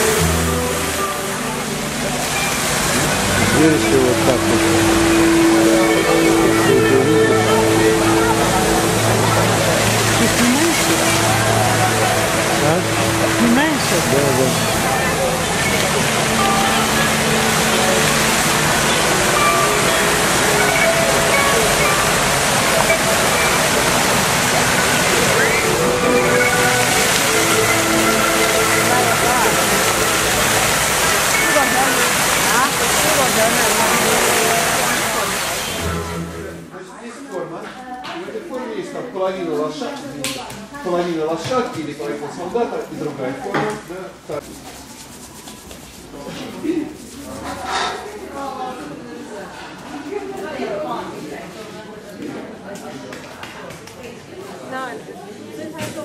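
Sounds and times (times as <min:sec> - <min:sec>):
fountain water jets spraying: 0:00.0 - 0:36.6
background voices: 0:00.0 - 0:36.8
music playing: 0:00.0 - 0:36.9.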